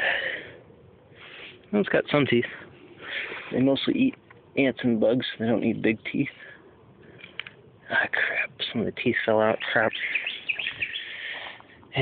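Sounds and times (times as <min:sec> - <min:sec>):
small birds chirping: 0:02.1 - 0:12.0.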